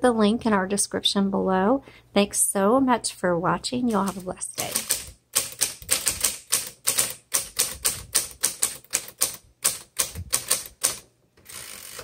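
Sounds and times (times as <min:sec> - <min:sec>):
manual typewriter typing: 0:03.9 - 0:12.0
typewriter carriage return rasp: 0:03.9 - 0:12.0.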